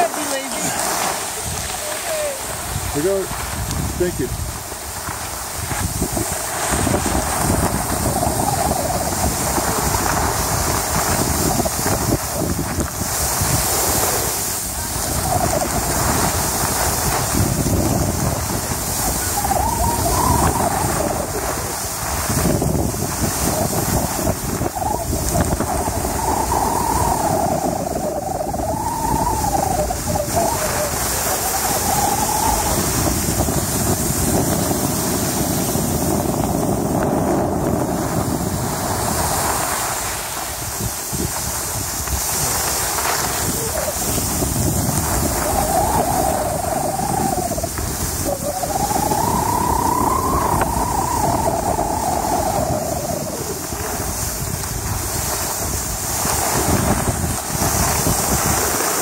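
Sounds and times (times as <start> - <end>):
skis scraping on snow: 0.0 - 59.0
wind rushing over microphone: 0.0 - 59.0.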